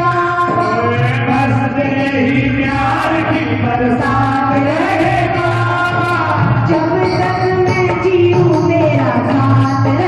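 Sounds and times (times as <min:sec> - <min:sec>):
musical backing: 0:00.0 - 0:10.0
person singing devotional song: 0:00.0 - 0:10.0.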